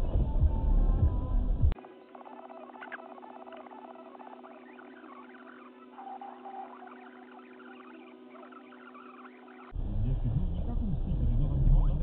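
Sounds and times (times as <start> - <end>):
high squeaky chirps: 1.8 - 9.8.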